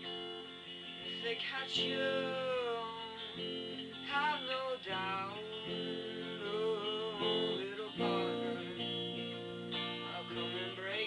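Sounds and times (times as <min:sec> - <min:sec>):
strummed guitar chords: 0:00.0 - 0:11.0
man singing: 0:01.0 - 0:11.0.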